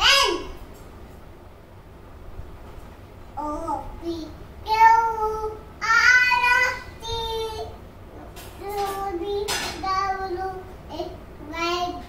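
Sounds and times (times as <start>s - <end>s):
young child singing: 3.4s - 7.8s, 8.5s - 12.0s.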